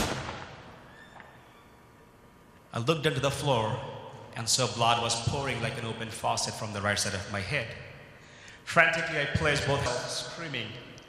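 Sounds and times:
loud sharp bang echoing: 0.0s - 1.5s.

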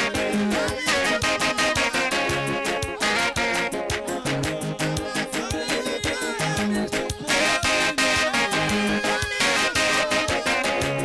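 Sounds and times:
instruments with fast beat: 0.0s - 11.0s
men's choir singing: 0.0s - 11.0s.

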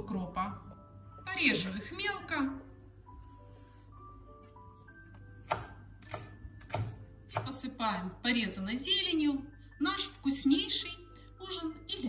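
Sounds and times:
knife chopping on cutting board: 5.4s - 7.6s.

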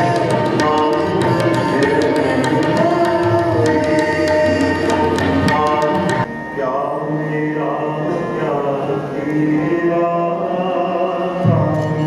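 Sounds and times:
tabla strokes: 0.0s - 6.6s
man singing: 0.0s - 12.0s.

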